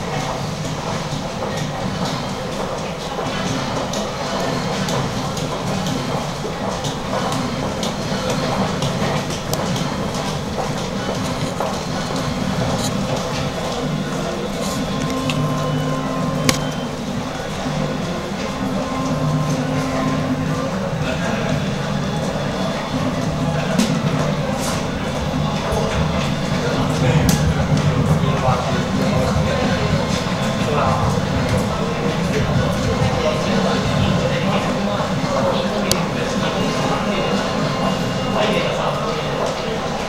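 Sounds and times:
voices in a shop: 0:00.0 - 0:40.0.

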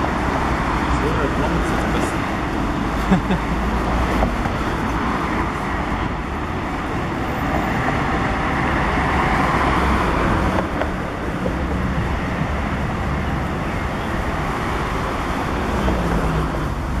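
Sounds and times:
road traffic hum: 0:00.0 - 0:17.0.

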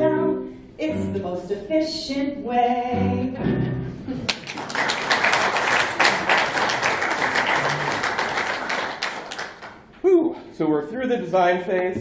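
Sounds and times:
audience applauding: 0:04.3 - 0:09.9.

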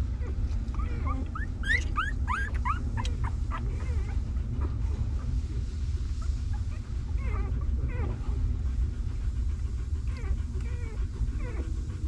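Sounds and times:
puppy whimpering: 0:00.1 - 0:05.3, 0:06.2 - 0:08.4, 0:09.8 - 0:12.0.

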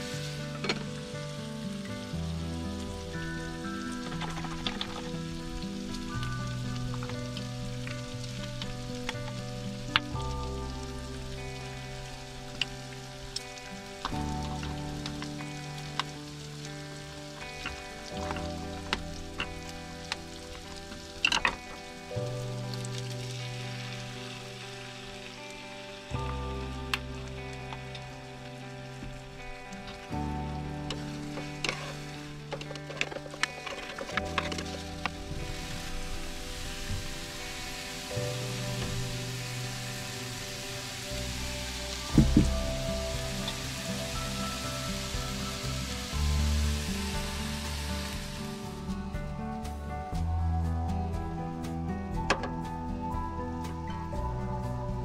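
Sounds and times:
food sizzling in a frying pan: 0:00.0 - 0:49.0
background music: 0:00.0 - 0:55.0.

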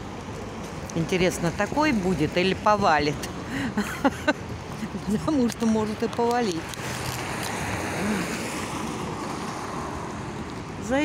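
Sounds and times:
wet city street noise: 0:00.0 - 0:11.0.

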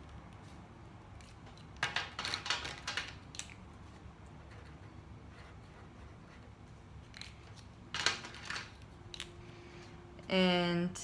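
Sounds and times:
marker caps clicking: 0:01.2 - 0:03.7, 0:07.0 - 0:09.3.

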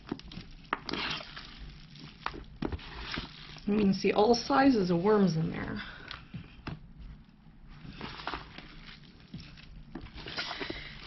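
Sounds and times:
hands squelching in wet bedding: 0:00.0 - 0:03.9, 0:07.8 - 0:11.0.

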